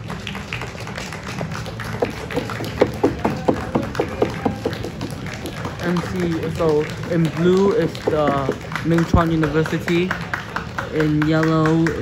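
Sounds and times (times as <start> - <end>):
handclaps: 0.0 - 12.0
quiet stadium music: 0.0 - 12.0.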